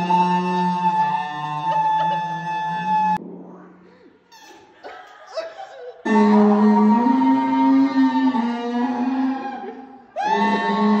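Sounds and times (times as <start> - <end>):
buzzy reedy sousaphone notes: 6.1 - 9.5, 10.3 - 11.0.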